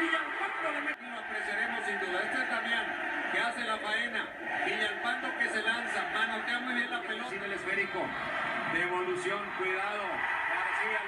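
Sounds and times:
commentators talking: 0.0s - 11.0s
stadium crowd on tv: 0.0s - 11.0s.

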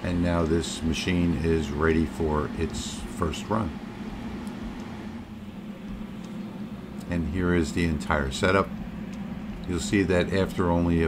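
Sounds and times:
water chiller humming: 0.0s - 11.0s.

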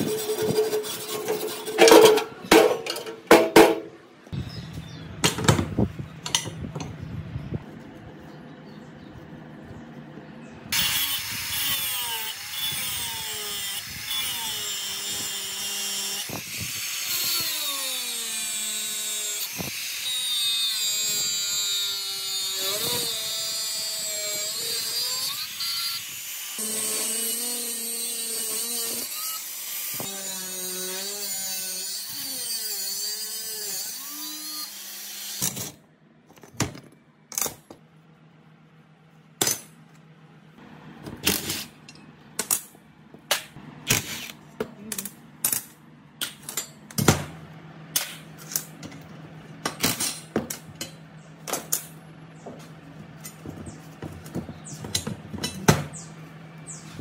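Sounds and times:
angle grinder sanding metal: 0.0s - 2.2s, 10.8s - 35.6s.

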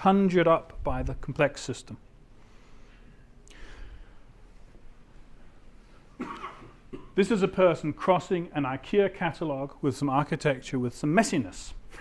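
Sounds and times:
short cough: 6.2s - 7.2s.

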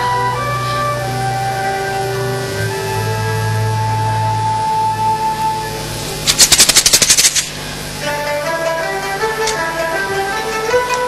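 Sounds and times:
low drone: 0.0s - 11.0s
rapid percussion roll: 6.2s - 11.0s.

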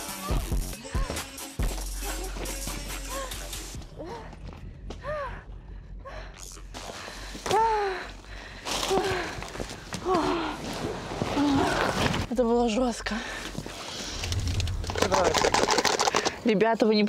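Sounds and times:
people crying out and gasping: 0.0s - 6.4s.

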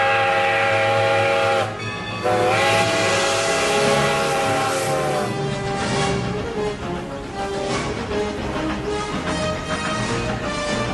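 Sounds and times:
steam locomotive whistle blasts: 0.0s - 5.4s
passing train running noise: 0.0s - 10.9s.

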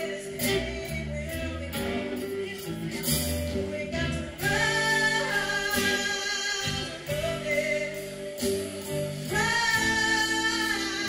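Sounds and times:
band playing: 0.0s - 11.0s
electric bass: 0.0s - 11.0s
woman singing: 0.0s - 11.0s.

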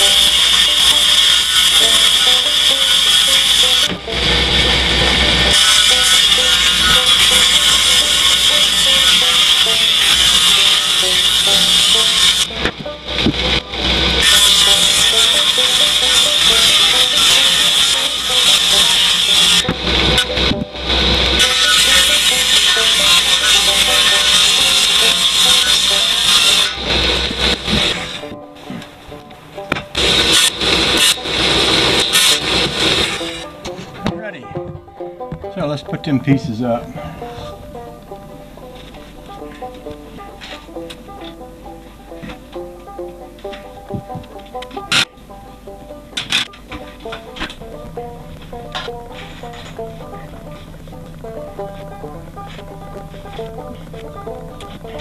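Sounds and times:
table saw ripping plywood: 0.0s - 29.0s, 29.6s - 34.0s.

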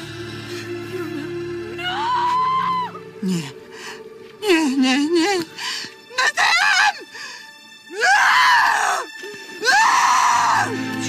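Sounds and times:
woman screaming in anguish: 1.8s - 3.0s.

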